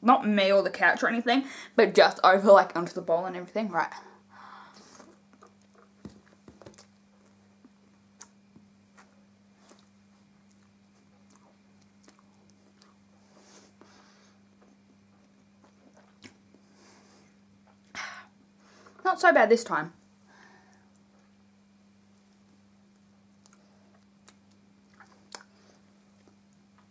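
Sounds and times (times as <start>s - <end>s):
steady low hum: 0.0s - 26.9s
chewing and wet mouth clicks: 4.8s - 5.9s, 8.2s - 9.1s, 9.7s - 13.0s, 22.9s - 26.9s.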